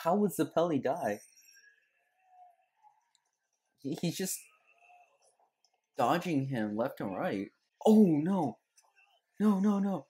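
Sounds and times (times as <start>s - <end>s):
man speaking: 0.0s - 1.3s, 3.8s - 4.5s, 6.0s - 8.6s, 9.4s - 10.0s.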